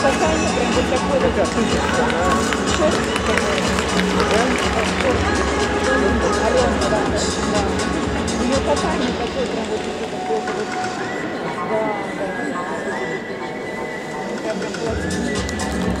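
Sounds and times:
murmur of spectators: 0.0s - 16.0s
music over sound system: 0.0s - 16.0s.

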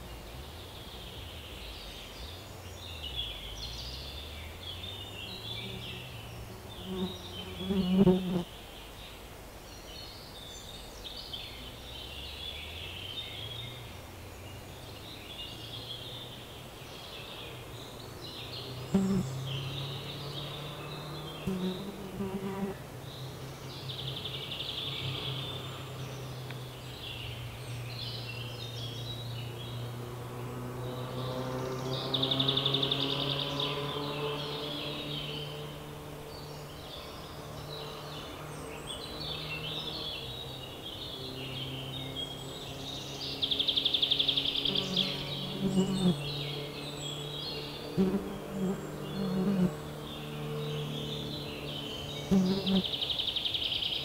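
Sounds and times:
songbirds singing: 0.0s - 54.0s
insect buzzing: 5.6s - 8.6s, 18.8s - 19.8s, 21.4s - 22.8s, 44.0s - 46.6s, 47.7s - 53.0s.

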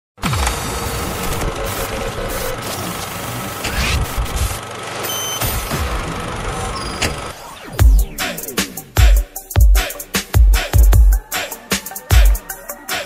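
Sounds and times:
short beep: 5.0s - 5.7s
heavy kick drums: 7.8s - 11.3s.

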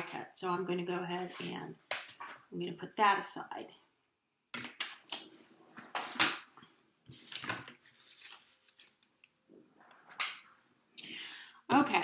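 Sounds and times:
paper sliding and rustling: 7.1s - 9.0s.

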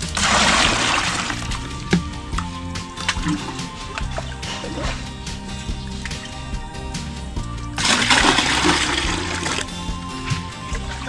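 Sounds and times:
water splashing into bucket: 0.0s - 6.6s, 7.8s - 11.0s
background music: 0.0s - 11.0s.

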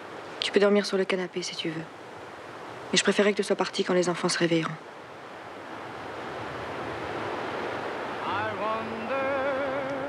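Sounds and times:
rushing outdoor ambience: 0.0s - 10.0s.

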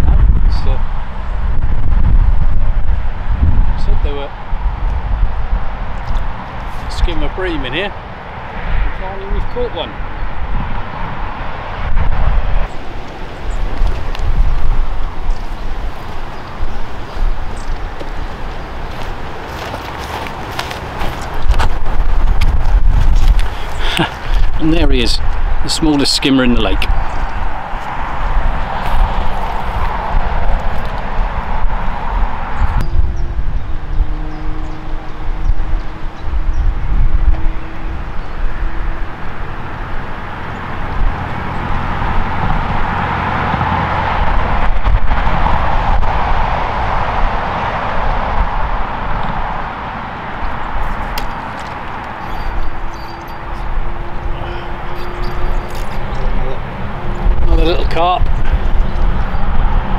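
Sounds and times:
road traffic passing: 0.0s - 59.9s
wind rumbling on microphone: 0.0s - 59.9s.

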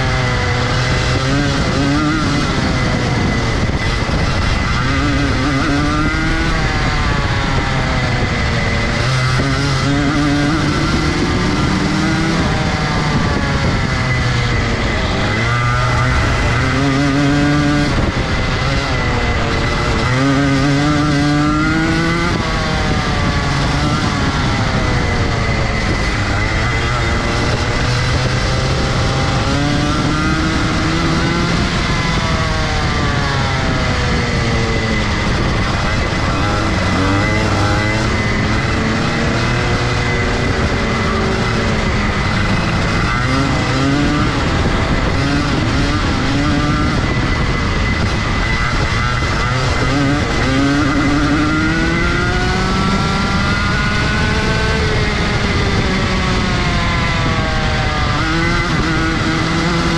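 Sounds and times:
kart engine revving: 0.0s - 59.9s.

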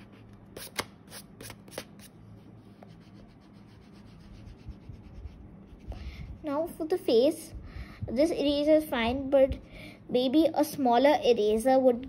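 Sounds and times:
eraser rubbing on paper: 0.0s - 5.9s.

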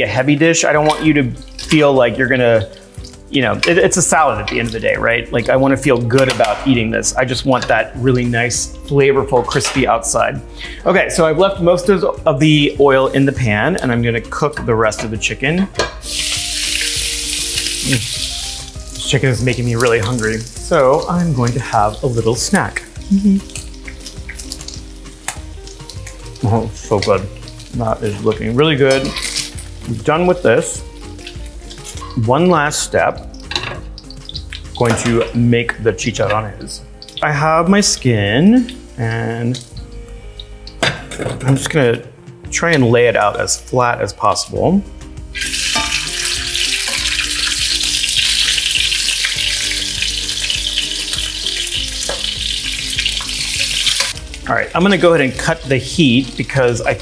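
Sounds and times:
chicken sizzling in a skillet: 0.0s - 57.0s
person humming: 23.0s - 23.6s.

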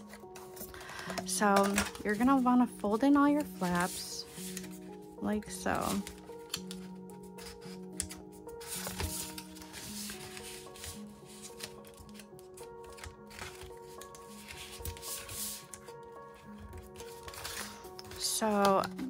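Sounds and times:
background music of held notes: 0.0s - 19.0s
cardstock rustling: 0.0s - 19.0s.

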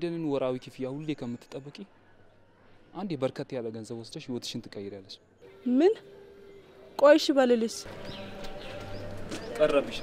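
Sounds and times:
woman speaking: 7.0s - 7.9s.

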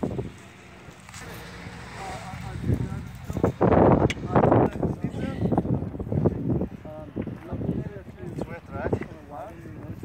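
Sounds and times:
distant people talking: 0.2s - 10.0s.

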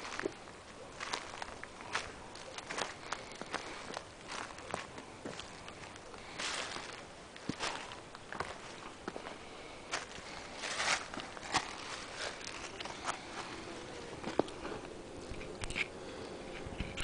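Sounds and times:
footsteps crackling and rustling: 0.0s - 17.0s
bees humming: 9.1s - 16.5s.

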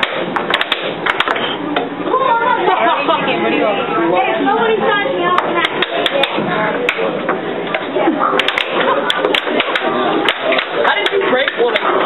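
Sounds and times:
air hockey puck clacking: 0.0s - 1.9s, 5.4s - 12.0s
voices chattering: 1.5s - 12.0s.

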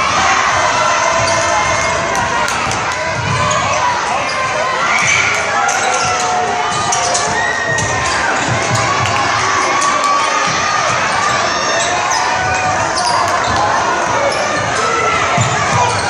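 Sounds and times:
crowd noise and shouting: 0.0s - 16.0s.

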